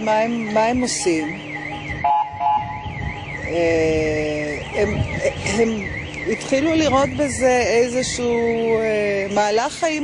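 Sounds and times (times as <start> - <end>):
electronic alarm warbling: 0.2 - 7.6.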